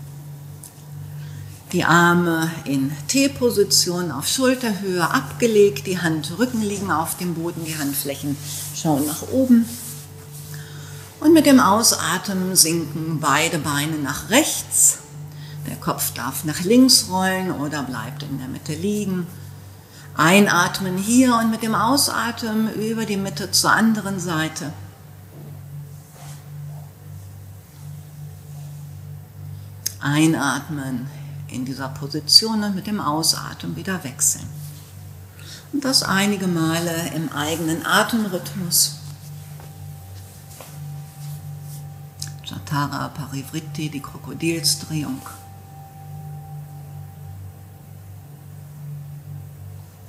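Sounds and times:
high held tone: 0:00.0 - 0:50.0
low hum: 0:00.0 - 0:50.0
soft ambient music: 0:00.0 - 0:50.0
faint soft rustling: 0:05.0 - 0:13.5, 0:25.4 - 0:29.8, 0:34.0 - 0:47.8.

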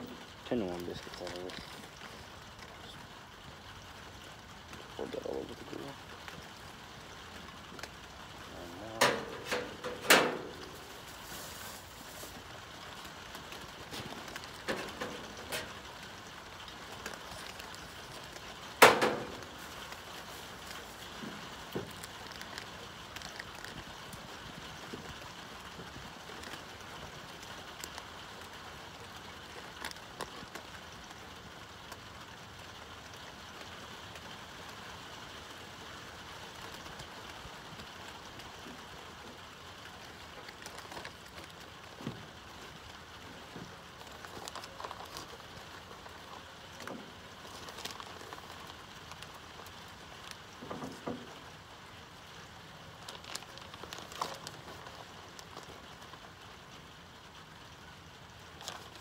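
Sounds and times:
light rain falling: 0:00.0 - 0:59.0
sharp knocks and thumps: 0:18.8 - 0:19.5.

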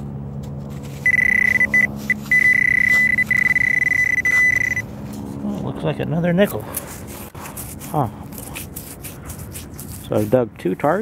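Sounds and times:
fingers rubbing grit off coin: 0:07.1 - 0:10.4.

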